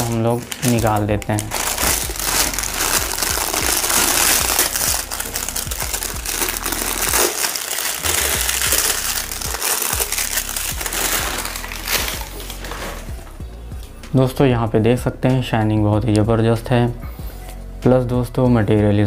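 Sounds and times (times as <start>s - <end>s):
plastic wrapping crinkling: 0.0s - 13.4s.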